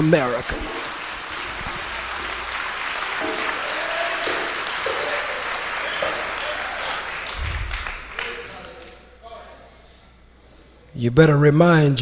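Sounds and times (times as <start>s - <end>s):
audience applauding: 0.0s - 9.0s.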